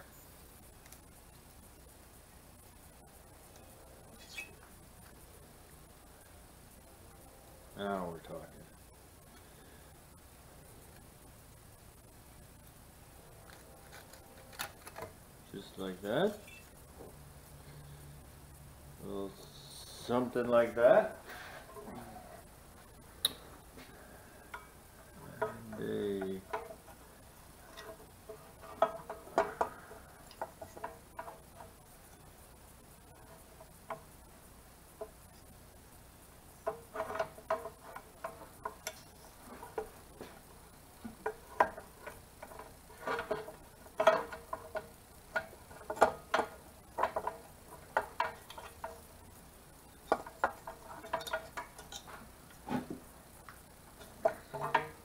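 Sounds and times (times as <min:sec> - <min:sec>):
short pitched squeak: 0:04.2 - 0:04.6.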